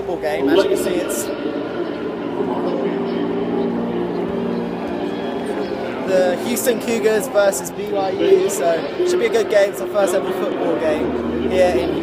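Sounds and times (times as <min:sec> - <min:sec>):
stadium hum: 0:00.0 - 0:12.0.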